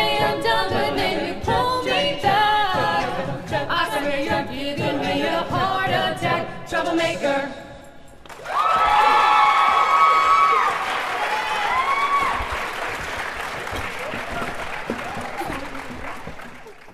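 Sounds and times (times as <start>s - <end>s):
a cappella singing: 0.0s - 8.1s
audience applauding and cheering: 8.2s - 16.9s
high-pitched whoops: 8.4s - 12.6s.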